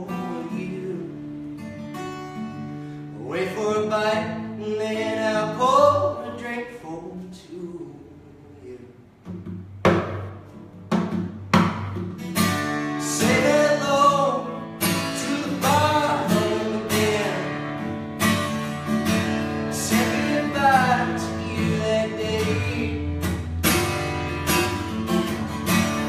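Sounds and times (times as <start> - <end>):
man singing: 0.0 - 1.4, 3.1 - 9.0, 12.9 - 18.0, 19.2 - 23.4
acoustic guitar strumming: 0.0 - 8.0, 9.2 - 26.0.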